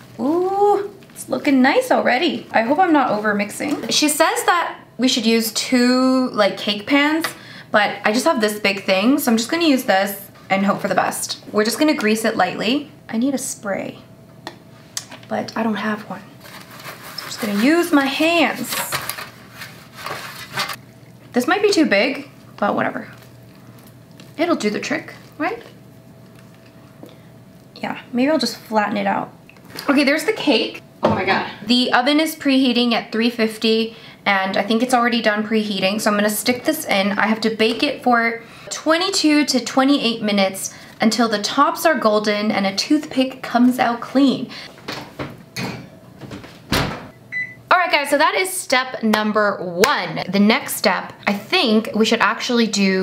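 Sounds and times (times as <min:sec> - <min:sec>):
rustling: 0:16.4 - 0:20.8
oven door shutting thump: 0:44.9 - 0:47.2.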